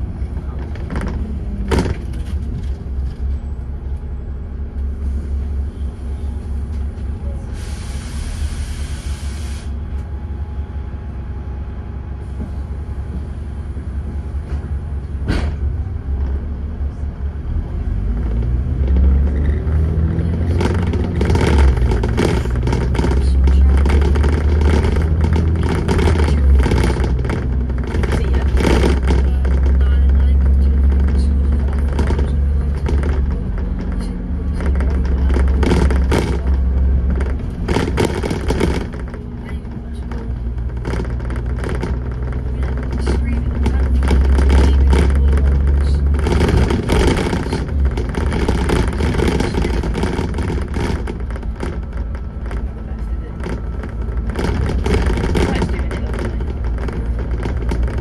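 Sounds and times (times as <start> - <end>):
bus body rattles: 0.0 - 58.0
bus diesel engine running: 0.0 - 58.0
hiss: 7.5 - 9.7
sharp knocks: 34.7 - 58.0.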